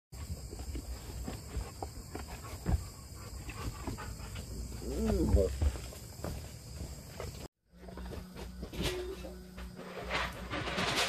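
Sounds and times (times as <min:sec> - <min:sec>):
boots thumping and scuffing: 0:00.2 - 0:04.2, 0:04.8 - 0:07.5.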